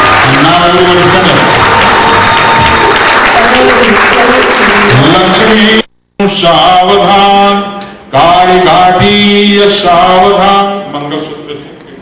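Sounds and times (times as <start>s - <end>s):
man chanting melodically: 4.9s - 11.3s.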